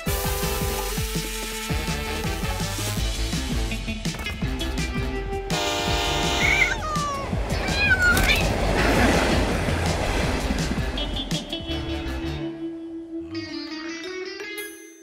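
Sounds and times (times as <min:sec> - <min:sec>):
background music: 0:00.0 - 0:15.0
cartoon cat yowling: 0:06.4 - 0:08.4
loud rushing noise: 0:07.2 - 0:11.5.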